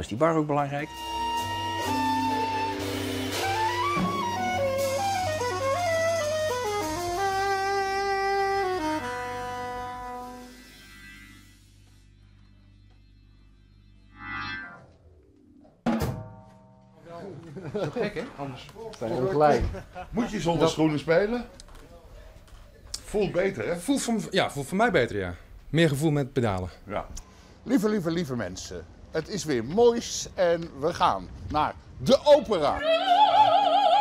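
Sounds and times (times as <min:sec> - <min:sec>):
small jazz group playing: 0:00.8 - 0:11.3
soprano saxophone: 0:00.9 - 0:11.8, 0:32.8 - 0:34.0.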